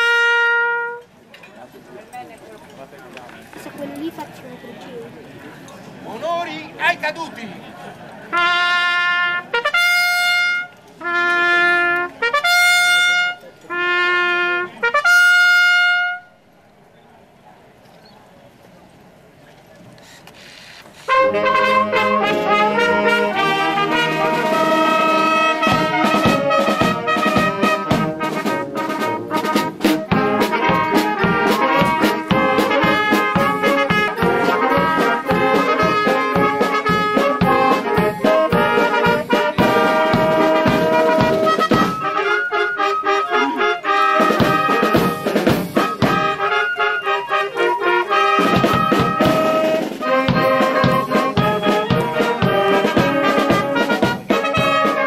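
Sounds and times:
brass band playing: 0.0 - 1.1, 8.3 - 16.4, 21.0 - 55.0
solo trumpet call: 0.0 - 1.1, 8.3 - 16.4, 21.0 - 55.0
drums: 20.8 - 55.0.

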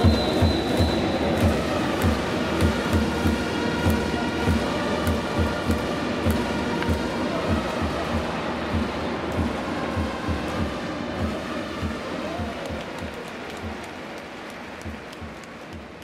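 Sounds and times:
drums beating steadily: 0.0 - 14.1, 14.7 - 16.0
stadium crowd noise: 0.0 - 16.0.

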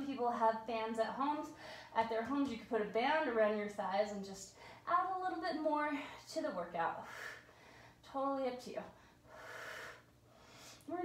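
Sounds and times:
woman speaking: 0.0 - 7.1, 8.1 - 8.9
woman breathing with effort: 1.6 - 2.0, 7.0 - 8.0, 9.0 - 10.9.

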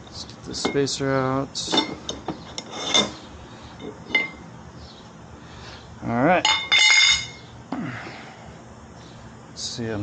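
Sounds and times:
sharp metal clinks: 6.4 - 7.4.

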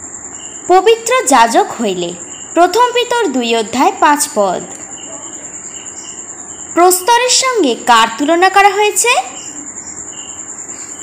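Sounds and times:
cricket trilling: 0.0 - 11.0
fainter lower chirp: 4.6 - 6.8, 9.2 - 11.0.

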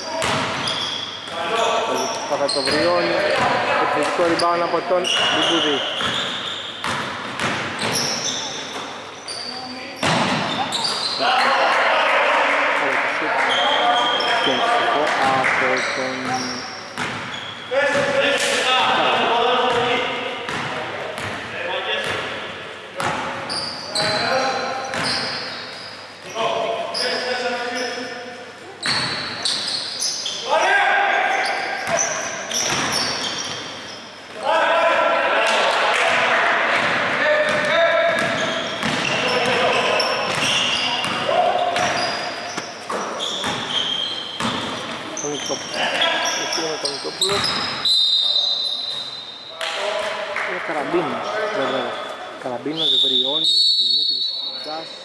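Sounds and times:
voices calling out: 0.0 - 6.8, 7.8 - 20.2, 23.4 - 54.8
basketball bouncing on hardwood floor: 0.2 - 0.5, 6.8 - 8.0, 36.8 - 39.6.

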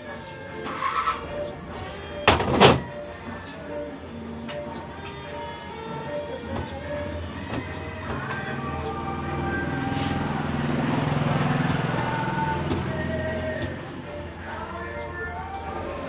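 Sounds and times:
background music: 0.0 - 16.0
passing vehicle rumble: 6.7 - 16.0.

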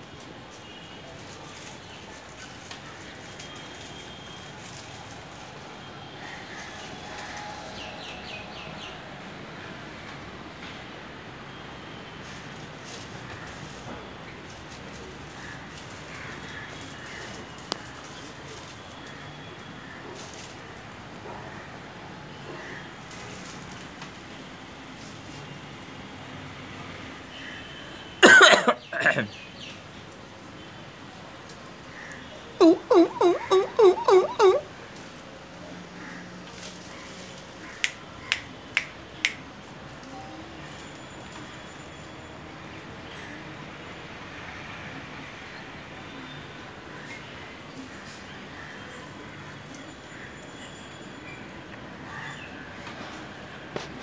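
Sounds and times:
faint steady background noise: 0.0 - 54.0
person coughing: 28.2 - 29.3.

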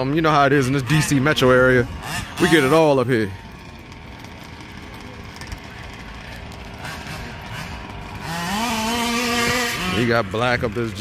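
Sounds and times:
small two-stroke engine revving: 0.0 - 11.0.

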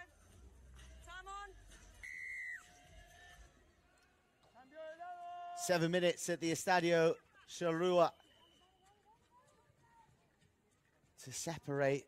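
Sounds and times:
referee's whistle blast: 2.0 - 2.7.

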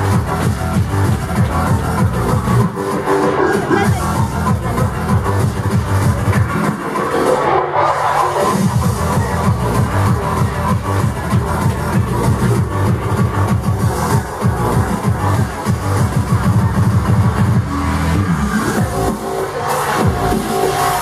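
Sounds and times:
techno music with heavy bass: 0.0 - 21.0.

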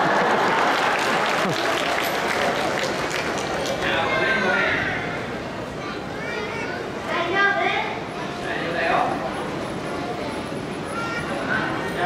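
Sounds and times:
crowd background noise: 0.0 - 12.0.

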